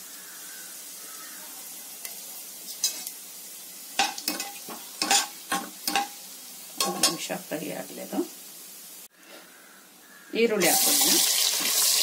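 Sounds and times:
spices sizzling in oil: 0.0s - 9.2s, 10.2s - 12.0s.

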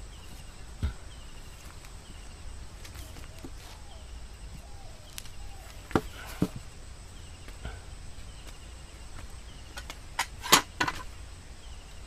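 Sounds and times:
faint high chirping: 0.0s - 9.9s.

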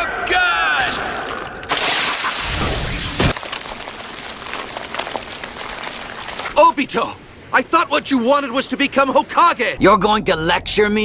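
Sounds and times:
man shouting: 0.0s - 1.2s
crackling energy hiss: 1.6s - 9.2s.

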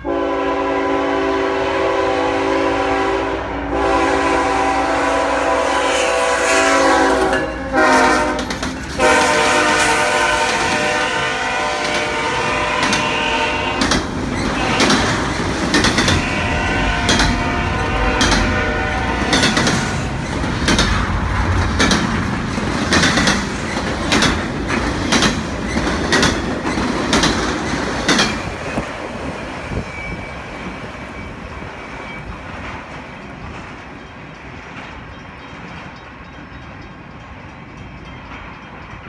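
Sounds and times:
freight train rumble: 0.0s - 39.0s
train wheels clicking: 5.7s - 39.0s.

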